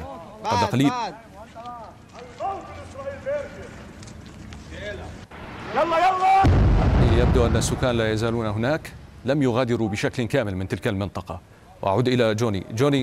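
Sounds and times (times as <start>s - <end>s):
loud deep explosion rumble: 6.4s - 9.1s.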